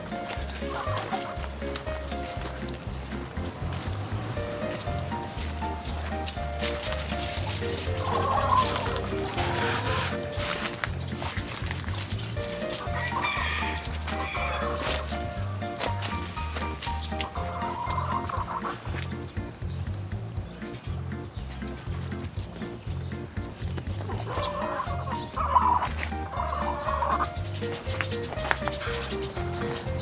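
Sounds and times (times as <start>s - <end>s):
hens clucking and calling: 0.0s - 19.6s, 20.2s - 30.0s
background music with bass line: 0.0s - 30.0s.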